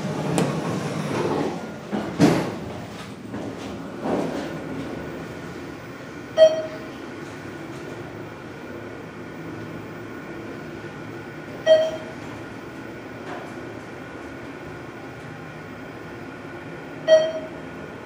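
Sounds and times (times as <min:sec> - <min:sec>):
elevator humming in shaft: 0:00.0 - 0:18.0.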